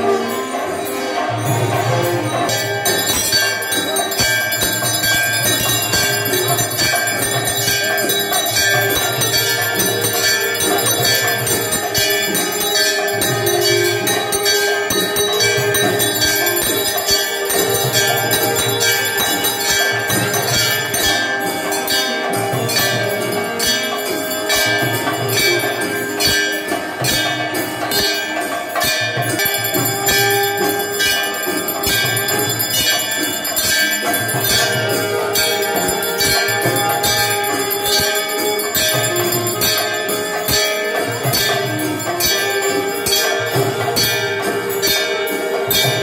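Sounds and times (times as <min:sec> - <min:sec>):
brass hand bells ringing: 0:00.0 - 0:46.0
struck percussion beat: 0:01.3 - 0:46.0.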